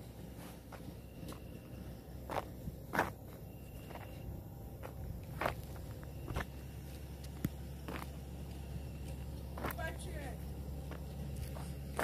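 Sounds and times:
footsteps walking: 0:00.0 - 0:12.0
steady low hum: 0:00.0 - 0:12.0.

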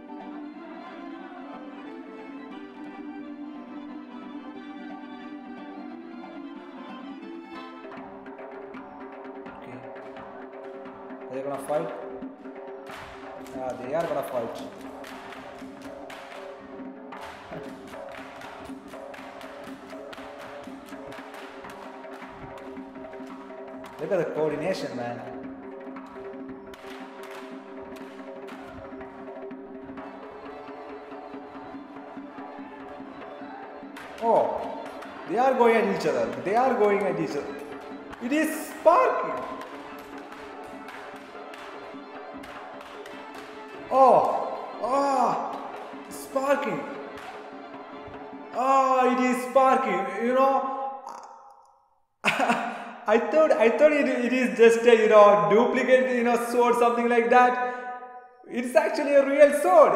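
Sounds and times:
dance music: 0:08.0 - 0:50.7.

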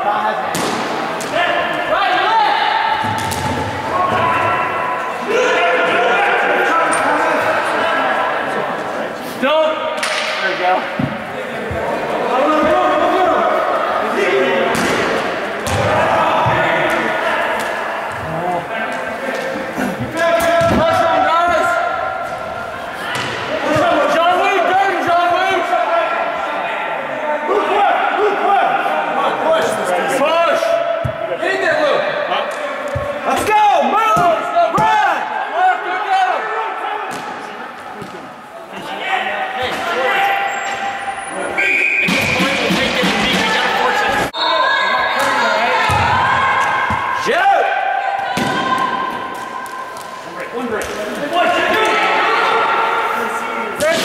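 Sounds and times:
players shouting: 0:00.0 - 0:54.0.

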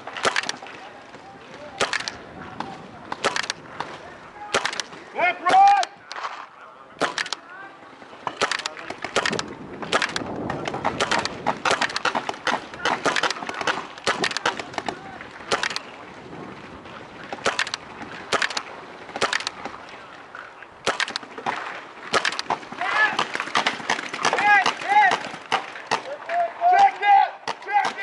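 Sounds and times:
paintball markers firing pops: 0:00.0 - 0:00.8, 0:01.7 - 0:06.4, 0:07.0 - 0:07.5, 0:08.2 - 0:15.9, 0:17.3 - 0:20.0, 0:20.8 - 0:26.1.

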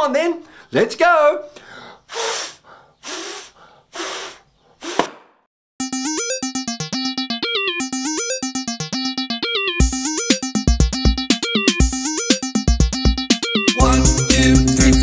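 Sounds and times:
man's breathy mouth sounds: 0:01.6 - 0:05.2
synthesizer song: 0:05.8 - 0:15.0
drum-machine beats: 0:09.8 - 0:15.0.

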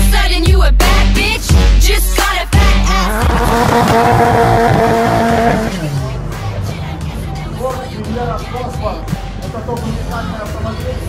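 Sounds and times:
tyres squealing: 0:02.9 - 0:06.0
car engine at high revs: 0:03.1 - 0:06.4.

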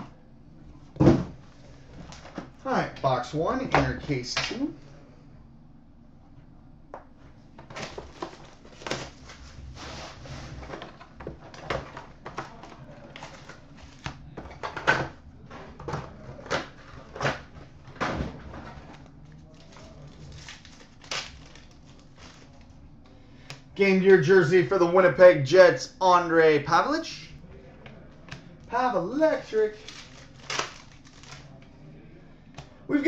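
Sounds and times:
card packs crinkling and ripping: 0:07.6 - 0:09.6, 0:10.7 - 0:22.7, 0:28.7 - 0:31.7.

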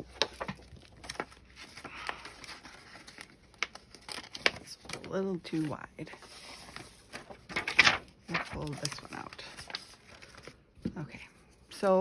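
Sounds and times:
paper and plastic sheets rustling: 0:00.0 - 0:12.0.

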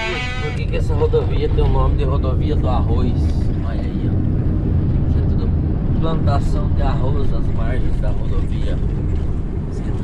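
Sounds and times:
diesel engine low drone: 0:00.0 - 0:10.0
road noise: 0:00.0 - 0:10.0.

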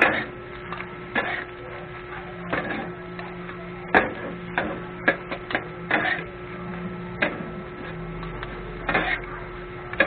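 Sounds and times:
metal spatulas clanking on griddle: 0:03.9 - 0:06.3, 0:08.9 - 0:09.3.

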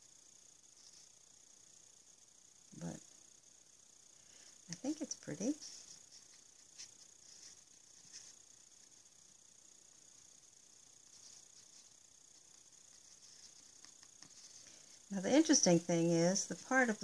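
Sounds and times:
faint high hiss: 0:00.0 - 0:17.0
soft brush scratching: 0:00.7 - 0:01.2, 0:04.7 - 0:09.3, 0:10.0 - 0:15.8.

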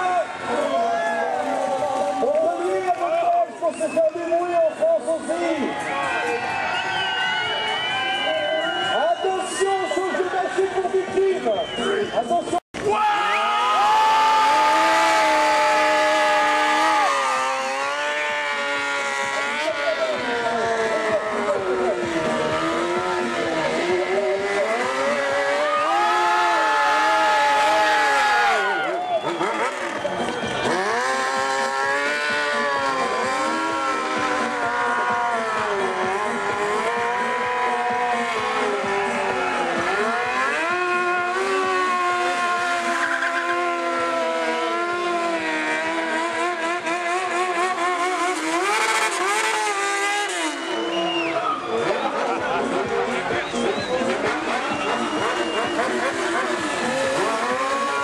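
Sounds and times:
motorcycle engines revving: 0:00.0 - 0:58.0
tyre squeal: 0:42.8 - 0:43.7.

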